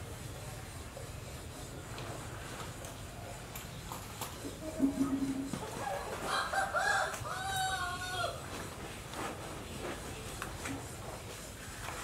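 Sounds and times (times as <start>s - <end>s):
rooster crowing: 4.8s - 8.4s.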